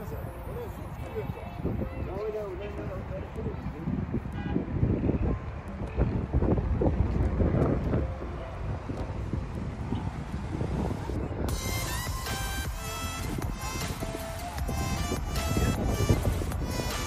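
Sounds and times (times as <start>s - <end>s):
wind buffeting microphone: 0.0s - 17.0s
music: 11.5s - 17.0s.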